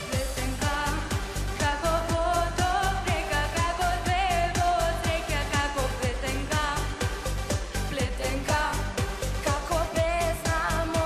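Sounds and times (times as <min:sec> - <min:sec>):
upbeat pop song beat: 0:00.0 - 0:11.0
girl singing with vibrato: 0:00.1 - 0:07.0, 0:07.9 - 0:11.0.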